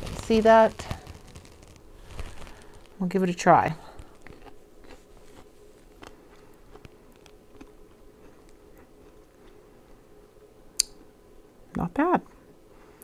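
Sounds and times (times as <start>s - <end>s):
person chewing crunchy radish: 0.0s - 3.0s, 3.8s - 10.0s.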